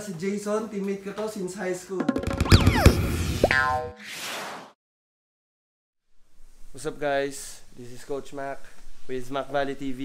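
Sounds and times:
cartoon boing rising in pitch: 2.4 - 4.0.

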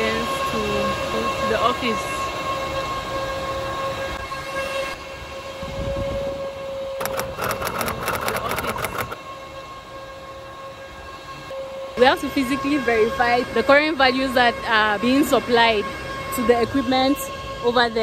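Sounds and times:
high-pitched machine whine: 6.1 - 10.8
rapid clicking: 7.0 - 9.2.

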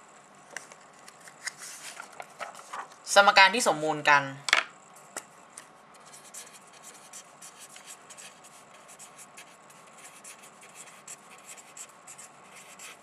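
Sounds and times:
pen scratching on paper: 6.0 - 13.0.

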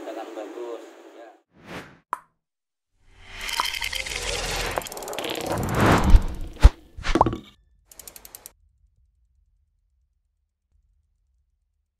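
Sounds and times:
sharp ratchet-like clicks: 3.4 - 5.6, 7.9 - 8.5.

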